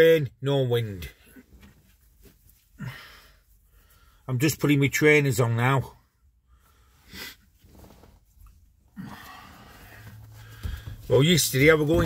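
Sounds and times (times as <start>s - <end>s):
man breathing: 2.6s - 4.3s, 6.2s - 7.6s, 8.8s - 11.1s.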